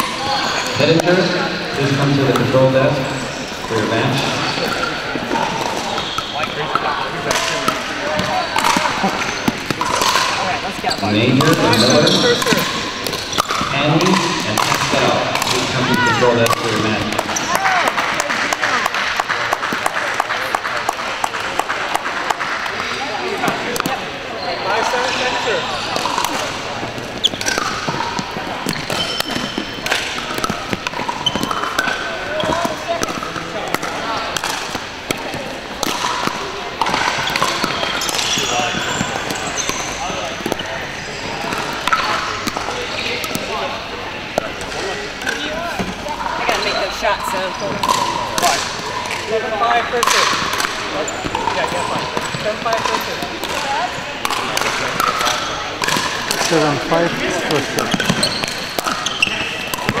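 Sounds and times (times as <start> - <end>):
chatter of many voices: 0.0 - 60.0
ball bouncing on wooden floor: 26.0 - 40.6.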